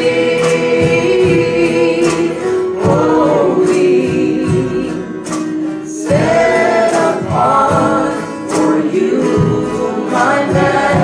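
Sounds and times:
acoustic guitar: 0.0 - 11.0
bass: 0.0 - 11.0
keyboard: 0.0 - 11.0
voices singing long notes: 0.0 - 11.0.

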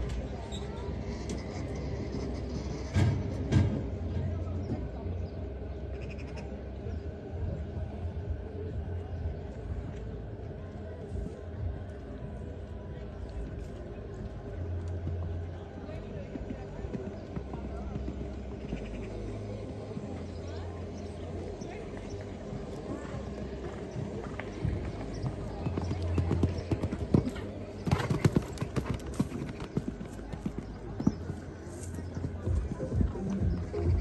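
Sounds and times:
horse hooves cantering on sand: 13.2 - 34.0.

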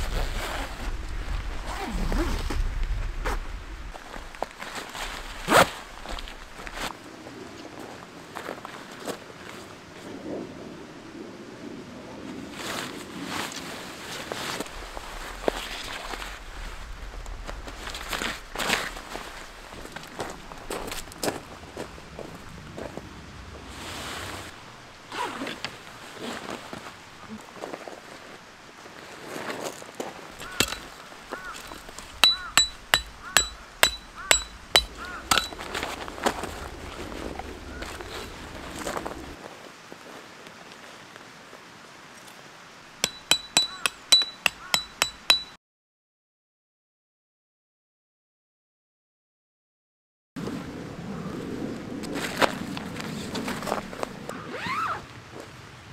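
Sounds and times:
tent fabric and poles rustling: 0.0 - 10.2, 12.3 - 23.0, 23.6 - 32.3, 34.6 - 42.5, 52.0 - 55.8
hammer driving metal tent pegs: 30.6 - 30.9, 32.2 - 35.7, 43.0 - 45.6.

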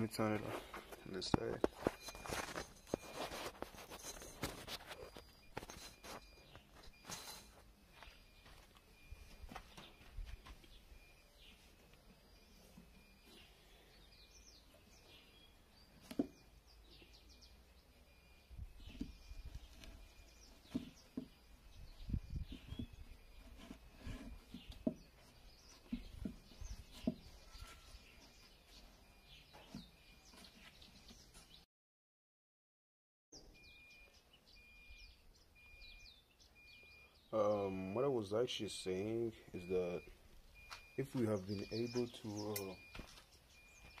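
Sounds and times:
person talking: 0.0 - 1.7, 37.4 - 40.1, 41.0 - 42.8
small birds chirping: 0.0 - 31.6, 33.4 - 44.0
plywood box bumping and knocking: 16.0 - 16.4, 20.6 - 21.4, 22.4 - 25.2, 25.8 - 27.4.

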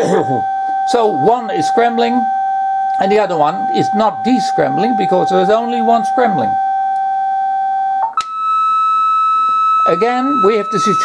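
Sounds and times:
electronic test tone: 0.0 - 11.0.

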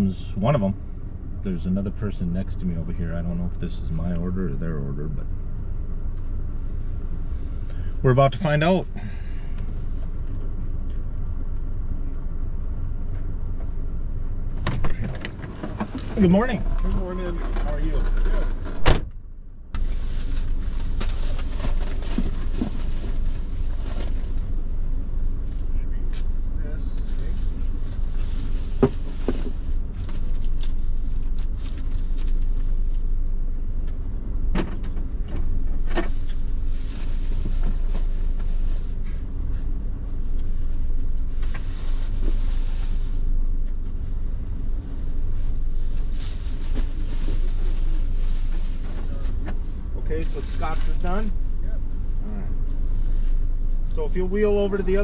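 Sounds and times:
car low rumble: 0.0 - 55.0.

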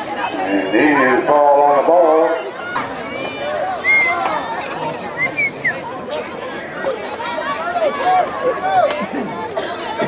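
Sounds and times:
people shouting: 6.8 - 9.0.

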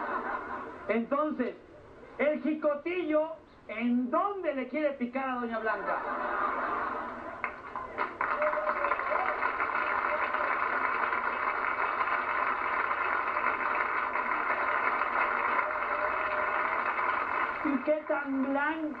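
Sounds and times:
audience laughing and applauding: 0.0 - 0.9, 5.8 - 18.1.

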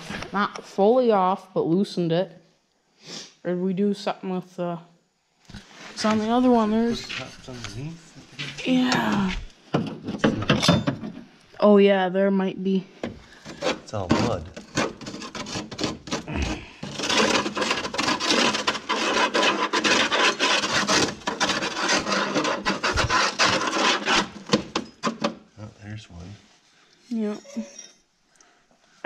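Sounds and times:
screwdriver scraping mud: 13.4 - 24.4.

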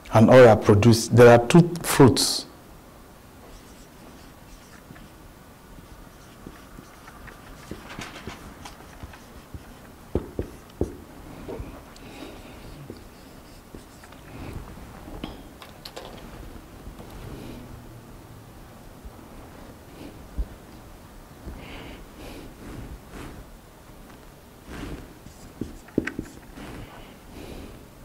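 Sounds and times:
marker scratching on paper: 3.4 - 5.2, 5.8 - 14.7, 24.7 - 27.0.

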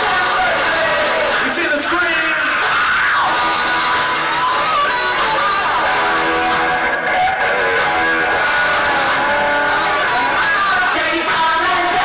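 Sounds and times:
live band playing loud music: 0.0 - 12.0.

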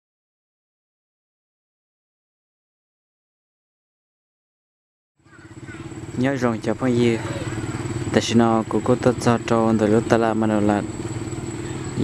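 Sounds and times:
motorcycle engine running: 5.2 - 12.0.

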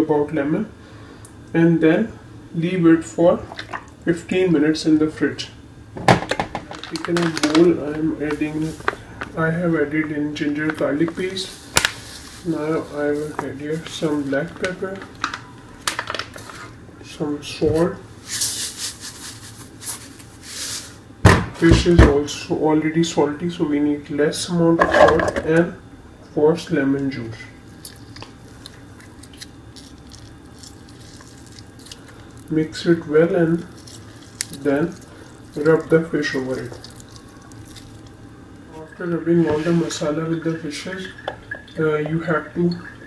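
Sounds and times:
wet squishing of paste: 27.6 - 38.2.

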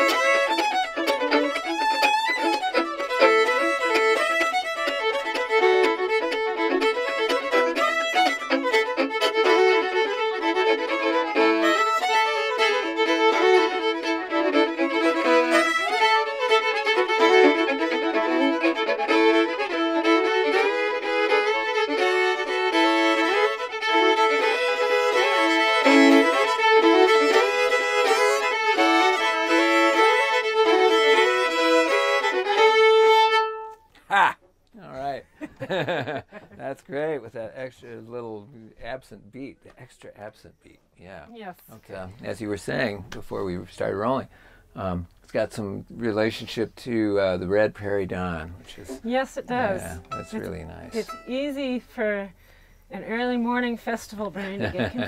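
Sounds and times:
two fiddles playing a tune: 0.0 - 33.9, 41.9 - 55.0.

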